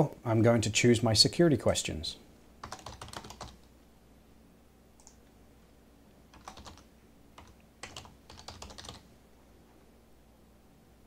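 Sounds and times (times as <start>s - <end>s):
faint computer keyboard typing: 2.6s - 3.7s, 5.0s - 5.3s, 6.3s - 9.1s.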